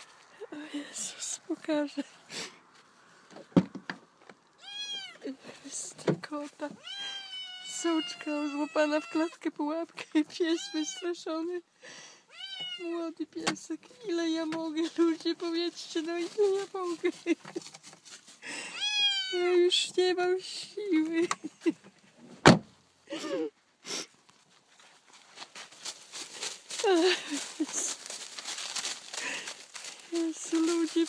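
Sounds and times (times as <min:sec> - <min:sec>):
young animal crying: 0:04.5 - 0:05.3, 0:06.7 - 0:09.4, 0:10.5 - 0:11.2, 0:12.3 - 0:12.9, 0:18.6 - 0:19.5
cat meowing: 0:04.6 - 0:05.2, 0:06.8 - 0:09.4, 0:12.3 - 0:12.8, 0:18.7 - 0:19.4.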